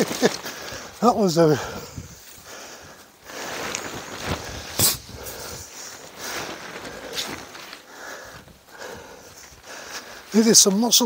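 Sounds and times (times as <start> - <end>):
tent fabric rustling: 0.0 - 11.0.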